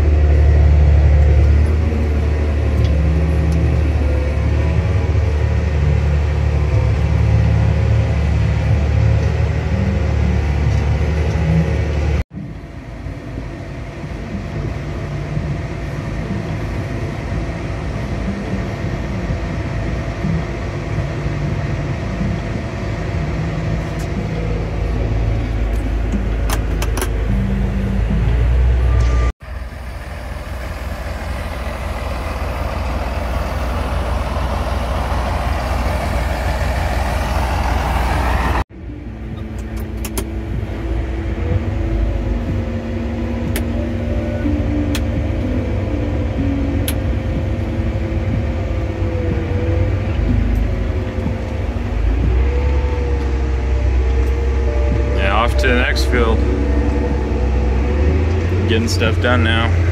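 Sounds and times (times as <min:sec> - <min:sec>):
steady whine: 0:00.0 - 0:59.9
tractor diesel engines droning: 0:00.0 - 0:59.9.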